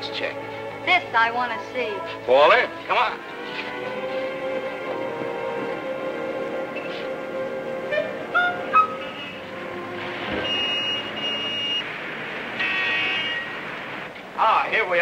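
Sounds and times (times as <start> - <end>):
orchestral film music: 0.0 - 12.5
street traffic noise: 0.0 - 15.0
high car horn toot: 7.9 - 9.4, 10.2 - 11.9, 12.6 - 13.7.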